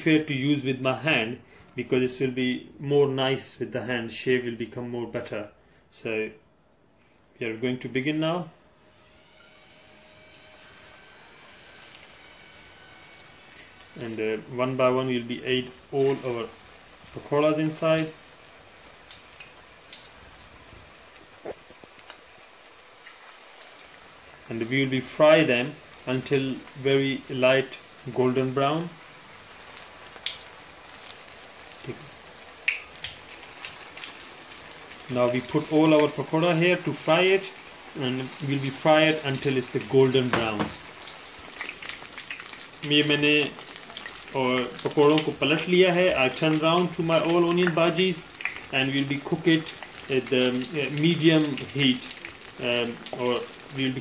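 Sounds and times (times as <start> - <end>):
man speaking: 0.0 - 6.4, 7.4 - 8.6, 14.0 - 18.2, 24.5 - 29.0, 35.1 - 40.8, 42.8 - 43.6, 44.4 - 54.0
food sizzling in hot oil: 8.6 - 54.0
oil popping and crackling: 10.2 - 54.0.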